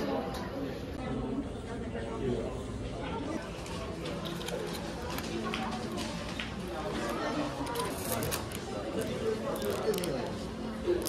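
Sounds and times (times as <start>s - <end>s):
people talking: 0.0s - 11.0s
plastic packaging crinkling: 7.7s - 11.0s.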